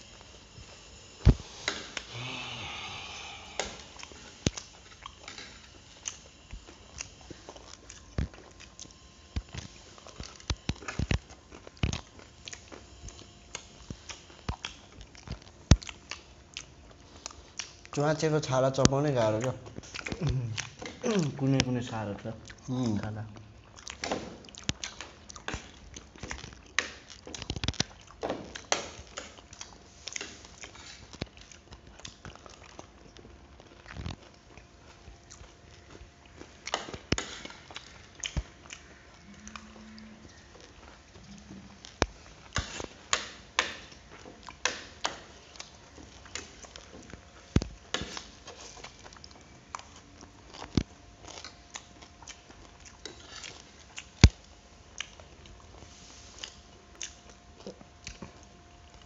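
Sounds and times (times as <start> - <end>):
chewing: 1.6 - 59.0.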